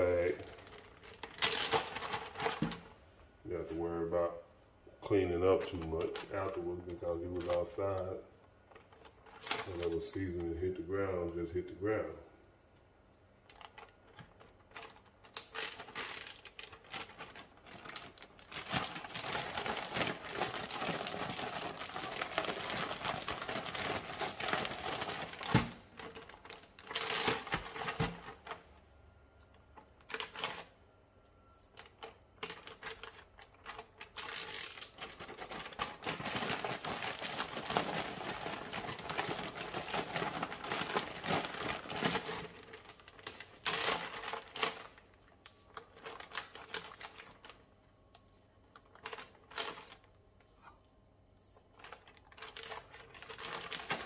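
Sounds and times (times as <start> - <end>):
plastic bag crinkling: 0.0 - 3.0, 3.6 - 12.2, 13.2 - 30.8, 31.7 - 54.0.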